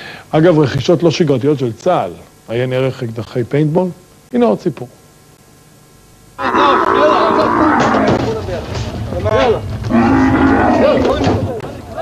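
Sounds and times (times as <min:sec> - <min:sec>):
camel bellowing: 0:06.4 - 0:08.2, 0:09.9 - 0:11.1.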